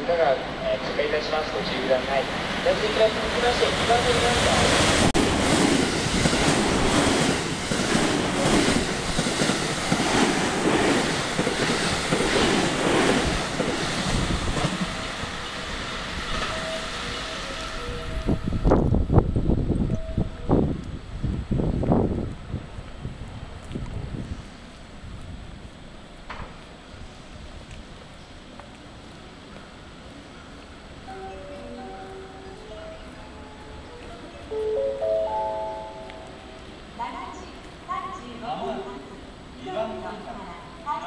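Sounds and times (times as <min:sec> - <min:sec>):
train passing at speed: 0:00.0 - 0:41.0.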